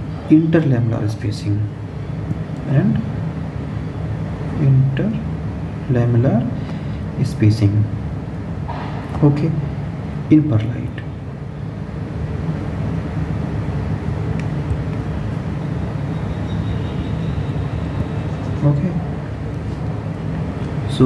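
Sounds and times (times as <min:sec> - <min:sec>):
steady low engine rumble: 0:00.0 - 0:21.0.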